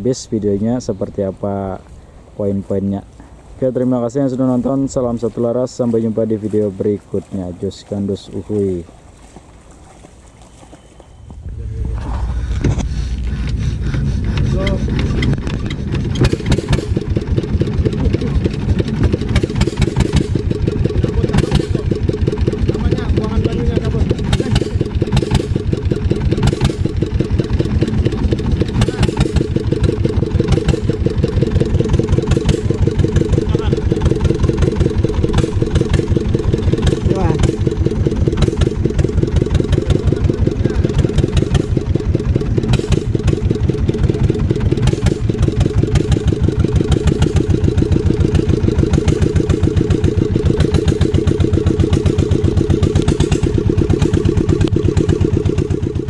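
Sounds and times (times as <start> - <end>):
small boat engine putter: 10.0 - 56.0.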